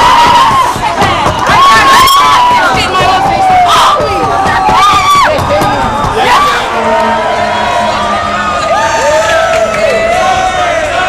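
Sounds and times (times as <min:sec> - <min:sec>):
group yelling and cheering: 0:00.0 - 0:11.0.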